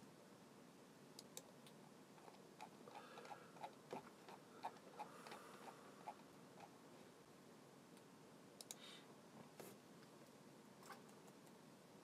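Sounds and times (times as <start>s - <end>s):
faint light clicks: 8.0s - 8.8s.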